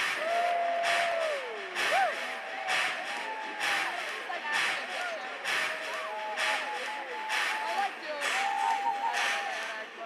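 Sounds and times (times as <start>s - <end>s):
sharp clap-like hits: 0.0s - 9.6s
electronic dance music: 0.0s - 10.0s.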